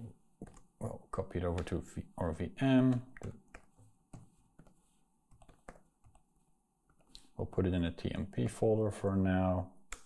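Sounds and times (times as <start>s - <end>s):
computer keyboard typing: 0.4s - 0.7s, 2.8s - 6.2s.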